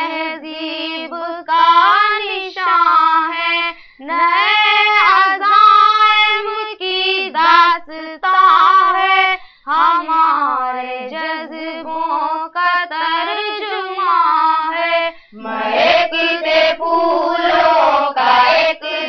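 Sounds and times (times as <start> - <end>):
girl singing unaccompanied: 0.0 - 19.0.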